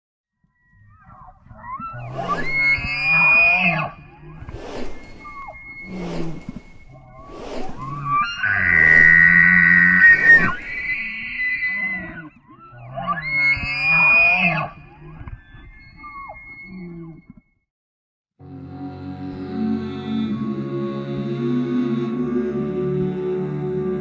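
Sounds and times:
wavering gliding tone: 0:01.0 - 0:17.2
sharp swooshes: 0:02.0 - 0:03.2, 0:04.2 - 0:11.2.

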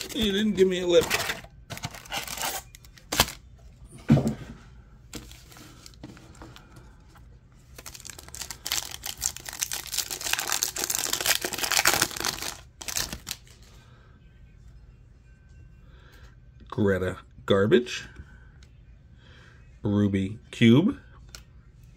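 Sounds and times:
foil pack tearing and crinkling: 0:00.0 - 0:03.4, 0:07.7 - 0:13.4.

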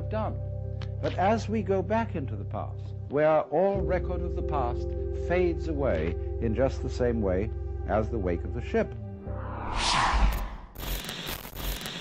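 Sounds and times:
rushing noise: 0:09.3 - 0:10.8.

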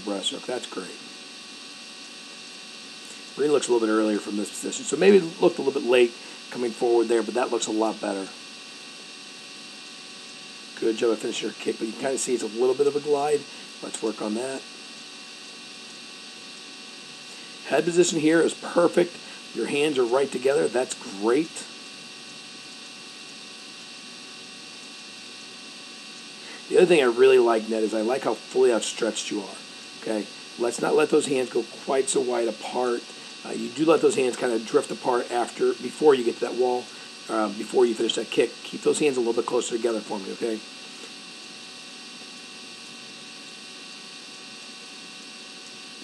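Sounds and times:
faint electrical hum: 0:00.0 - 0:46.0
steady background hiss: 0:00.0 - 0:46.0.

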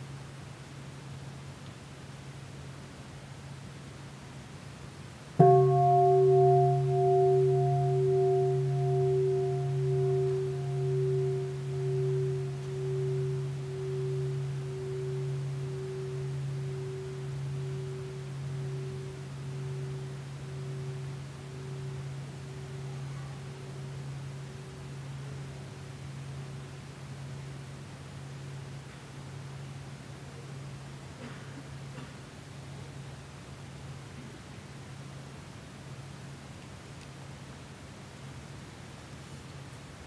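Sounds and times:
large bowl bell ringing: 0:05.4 - 0:31.0.

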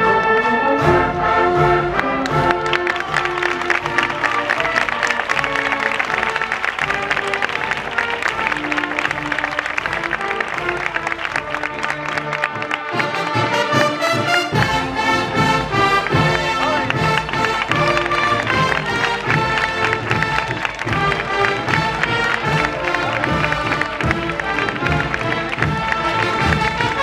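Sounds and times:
held brass notes: 0:00.0 - 0:27.0
procession band drums: 0:00.8 - 0:27.0.

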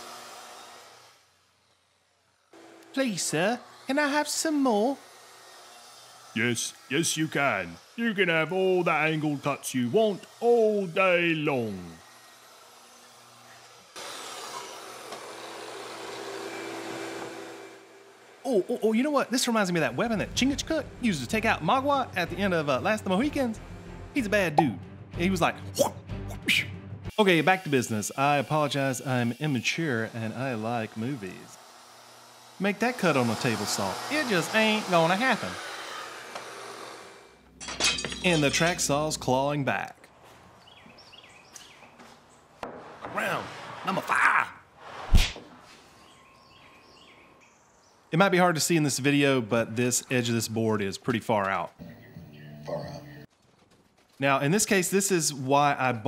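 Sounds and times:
track saw cutting board: 0:00.0 - 0:23.7, 0:27.1 - 0:39.4
bird chirps: 0:40.6 - 0:42.0, 0:46.0 - 0:48.1, 0:51.8 - 0:53.3.

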